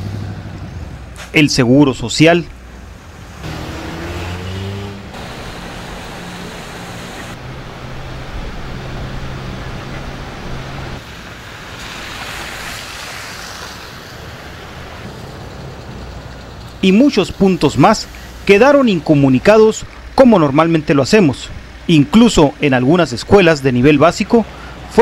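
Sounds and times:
car engines running: 0.0s - 25.0s
tyres ploughing through water: 1.0s - 25.0s.

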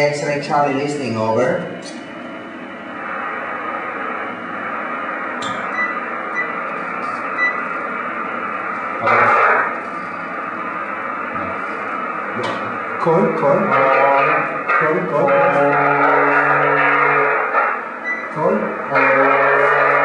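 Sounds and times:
burst of radio noise: 3.0s - 20.0s
radio receiver hiss: 3.0s - 20.0s.

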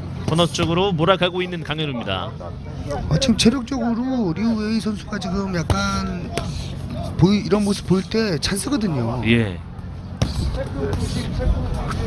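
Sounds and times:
boxers' footwork and punches thudding: 0.2s - 1.0s, 5.3s - 8.0s, 10.0s - 12.0s
faint background voices: 9.6s - 12.0s.

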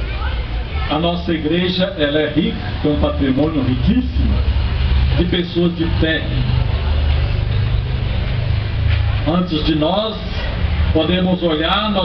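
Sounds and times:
steady low rumble: 0.0s - 12.0s
man speaking over loudspeaker: 0.9s - 4.5s, 5.1s - 6.6s, 9.2s - 12.0s.

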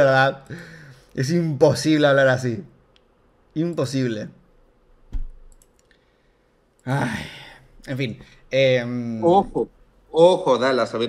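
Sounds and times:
man talking: 0.0s - 0.6s, 1.2s - 2.7s, 3.6s - 4.4s, 6.8s - 11.0s.

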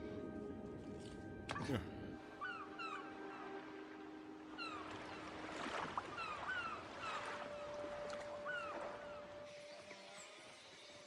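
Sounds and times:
faint sustained music notes: 0.0s - 11.0s.

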